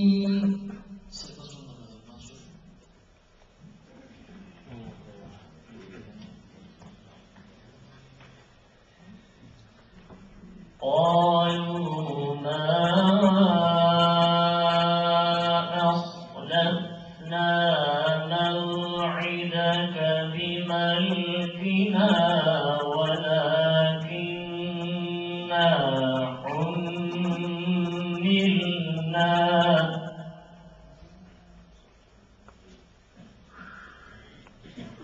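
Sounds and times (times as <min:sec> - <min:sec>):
man chanting melodically: 0:00.0 - 0:02.5, 0:10.6 - 0:31.4.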